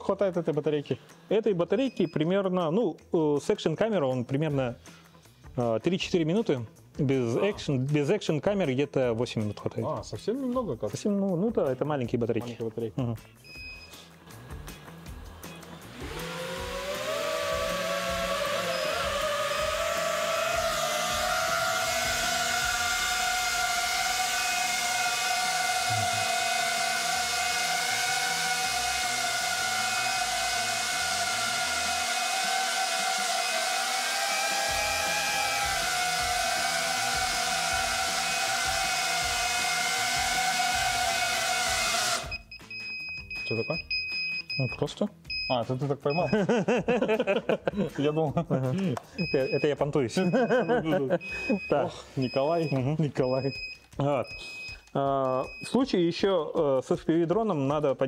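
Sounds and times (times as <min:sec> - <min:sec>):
drone propellers high-pitched whine: 0:15.2 - 0:42.4.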